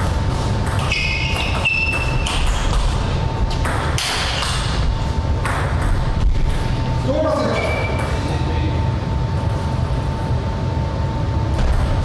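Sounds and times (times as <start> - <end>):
shoes squeaking on floor: 0.8 - 2.5.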